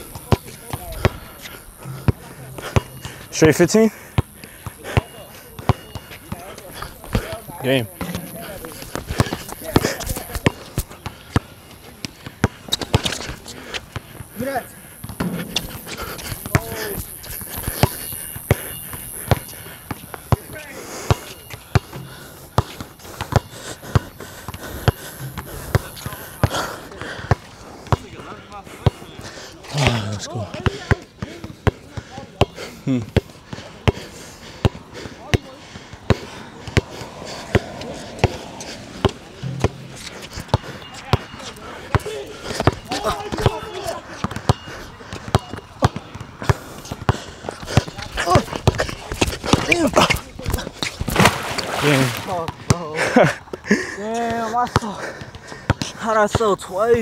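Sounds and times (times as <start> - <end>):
basketball bouncing on hard court: 0.1 - 3.3, 8.0 - 11.4, 15.0 - 23.5, 39.0 - 42.0, 44.2 - 50.1.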